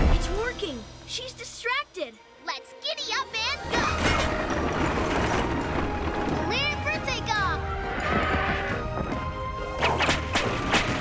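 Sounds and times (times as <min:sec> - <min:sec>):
mechanical rattling and rumbling: 0:03.7 - 0:11.0.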